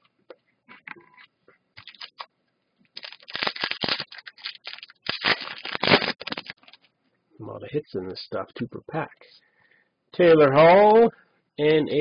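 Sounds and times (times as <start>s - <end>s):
foil wrapper tearing and crinkling: 1.8s - 2.3s, 3.0s - 6.9s.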